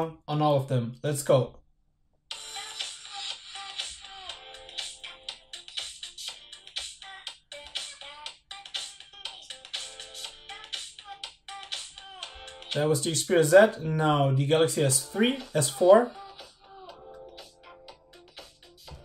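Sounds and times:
song through small phone speaker: 0:02.3 - 0:19.0.

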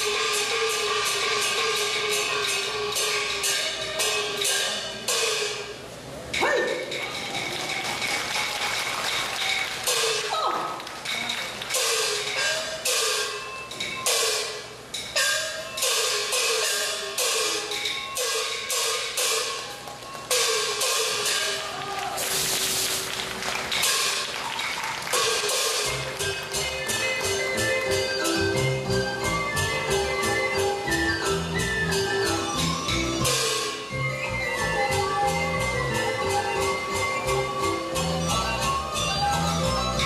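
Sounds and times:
cymbal strikes: 0:11.8 - 0:23.0, 0:32.6 - 0:34.0.

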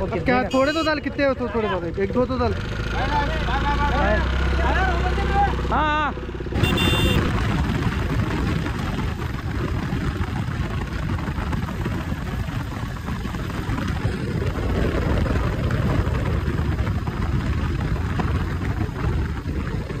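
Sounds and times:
motorcycle road noise: 0:00.0 - 0:20.0
wind buffeting microphone: 0:06.5 - 0:20.0.

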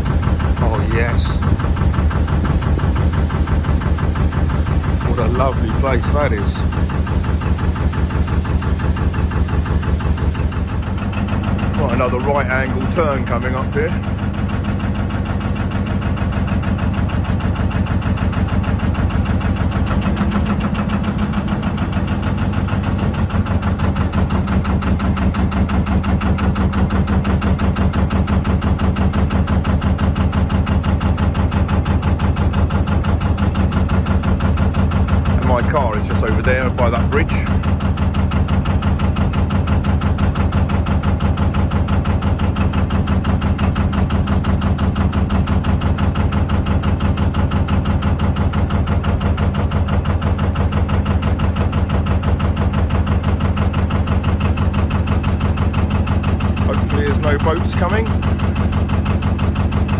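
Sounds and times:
boat diesel engine running: 0:00.0 - 0:59.9.

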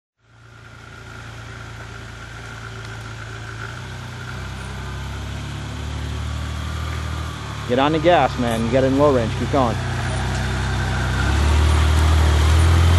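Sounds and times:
truck engine running at low revs: 0:00.2 - 0:12.9.

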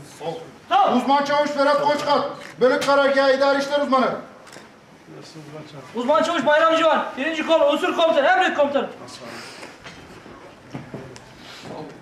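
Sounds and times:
people moving about: 0:09.0 - 0:12.0.

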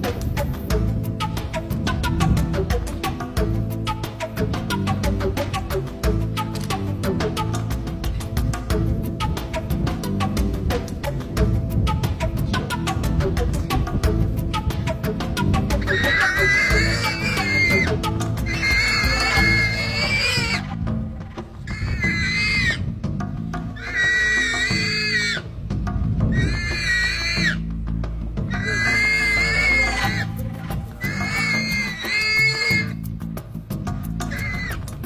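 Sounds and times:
background music: 0:00.0 - 0:35.0
warthog screaming: 0:15.8 - 0:20.7, 0:21.7 - 0:22.8, 0:23.8 - 0:25.5, 0:26.4 - 0:27.6, 0:28.5 - 0:30.3, 0:31.0 - 0:33.0, 0:34.3 - 0:34.8.

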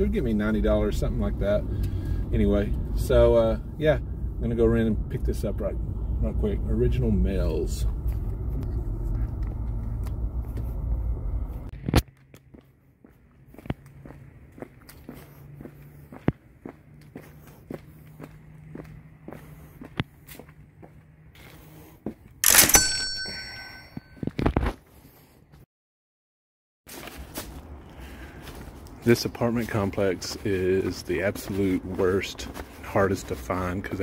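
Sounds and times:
footsteps on concrete: 0:09.3 - 0:10.7, 0:11.7 - 0:22.4, 0:26.9 - 0:34.0.

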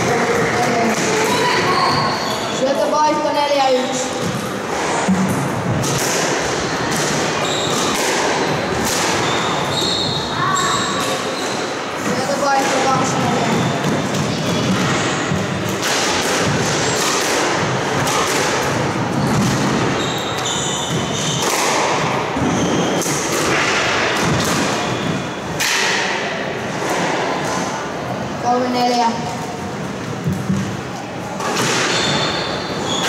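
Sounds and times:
voices chattering: 0:00.0 - 0:15.8
squash ball hits: 0:04.2 - 0:09.9, 0:11.0 - 0:27.6, 0:31.4 - 0:32.3.

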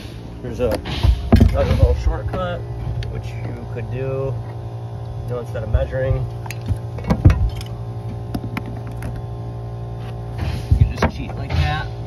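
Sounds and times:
machine hum: 0:00.0 - 0:12.0.

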